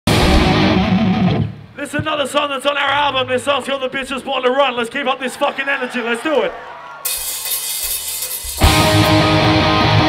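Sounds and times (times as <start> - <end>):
distorted electric guitar: 0.1 - 1.8, 8.5 - 10.0.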